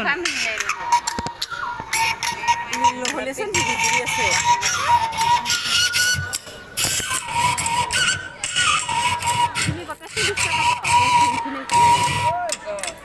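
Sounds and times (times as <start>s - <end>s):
crowd talking: 0.0s - 13.0s.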